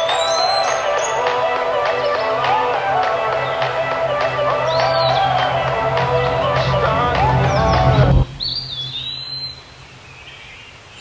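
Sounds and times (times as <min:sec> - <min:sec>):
music: 0:00.0 - 0:08.6
faint outdoor background noise: 0:00.0 - 0:11.0
bird chirping: 0:07.7 - 0:10.8.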